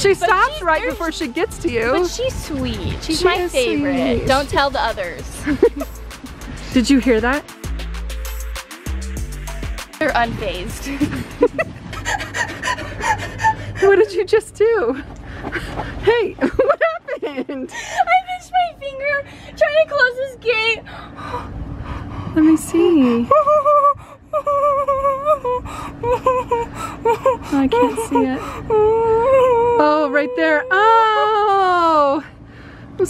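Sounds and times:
person whimpering: 23.2s - 31.6s
person moaning in pain: 25.2s - 31.6s
pained breaths and gasps: 28.4s - 29.3s.

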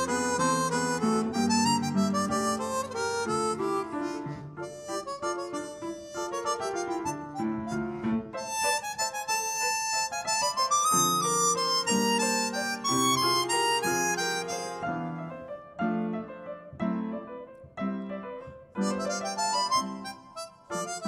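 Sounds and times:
harmonica melody: 0.0s - 15.5s, 18.8s - 21.0s
piano accompaniment: 0.0s - 21.0s.

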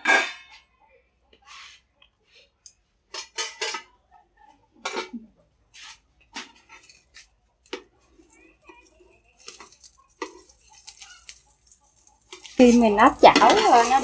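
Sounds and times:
metal plate and lid clattering: 3.1s - 3.9s, 12.3s - 14.0s
metal spatula scraping frying pan: 9.4s - 14.0s.

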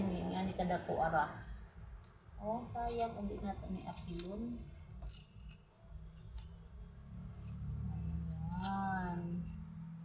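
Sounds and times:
knife scraping root skin: 3.8s - 4.4s, 5.0s - 6.6s, 7.4s - 9.6s.

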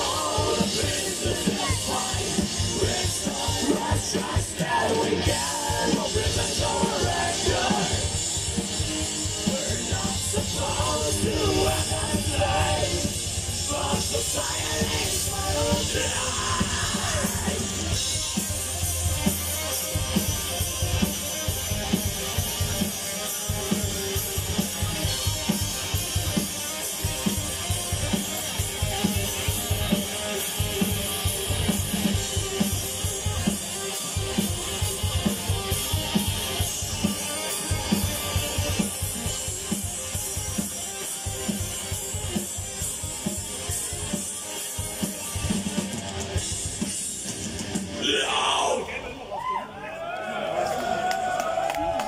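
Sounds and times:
rapid bass drum strokes: 0.0s - 44.2s
metal band playing live: 0.0s - 49.5s.

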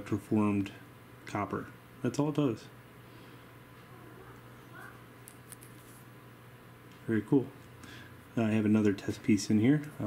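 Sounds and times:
low electrical hum: 0.0s - 10.0s.

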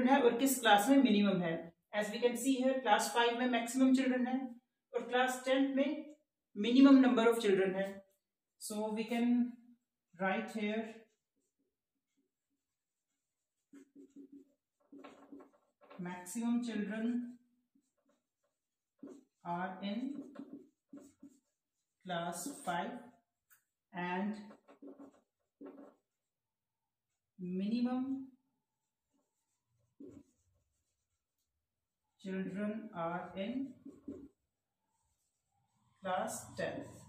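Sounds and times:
marker squeaking on whiteboard: 12.5s - 16.3s, 17.8s - 23.7s, 24.3s - 26.2s, 29.1s - 31.4s, 33.6s - 36.0s.

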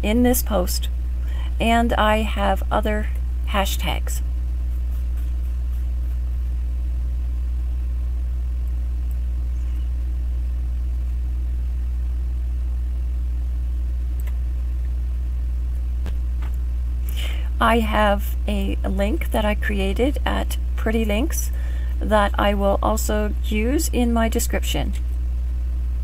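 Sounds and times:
low electrical hum: 0.0s - 26.0s.

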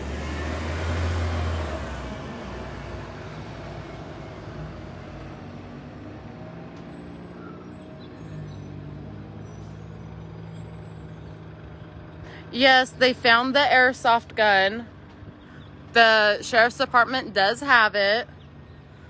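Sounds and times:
vehicle passing close by: 0.0s - 12.8s
idling engines and traffic hum: 0.0s - 19.0s.

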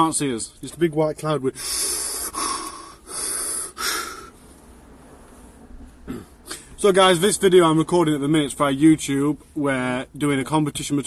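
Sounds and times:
man's heavy hissing breaths: 1.6s - 4.6s.

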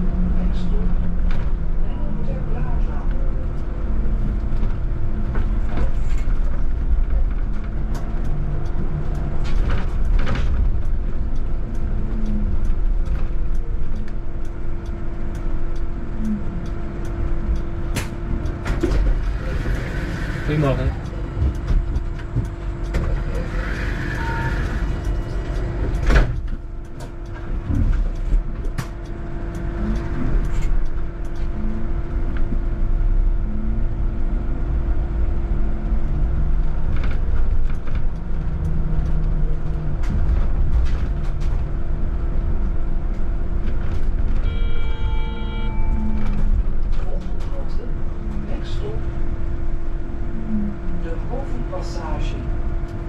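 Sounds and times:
constant hum: 0.0s - 53.0s
road and tyre rumble: 0.0s - 53.0s
short electronic tone: 44.4s - 46.5s.

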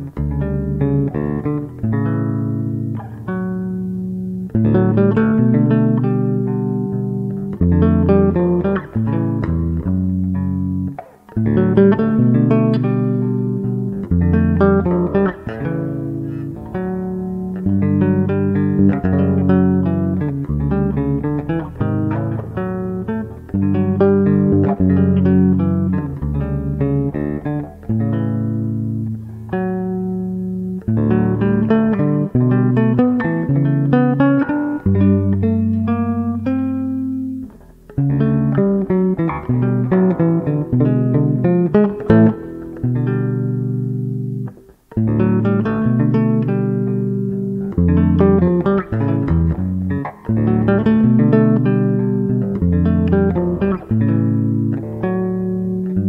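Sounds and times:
electric bass plucked fingerstyle: 0.0s - 56.0s.

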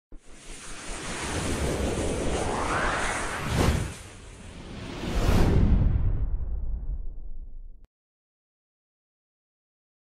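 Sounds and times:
rushing noise swell: 0.2s - 6.0s.

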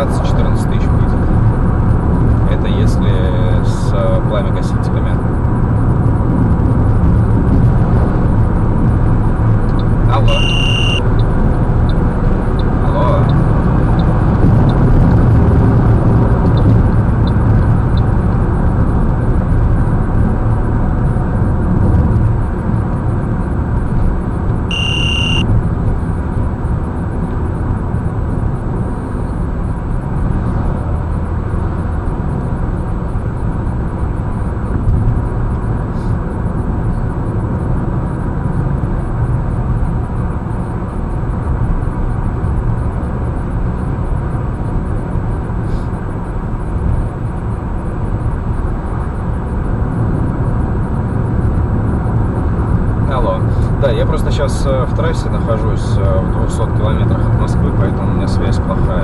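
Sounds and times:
car road and engine noise: 0.0s - 59.0s
short electronic beep: 9.7s - 13.4s, 24.7s - 25.5s.

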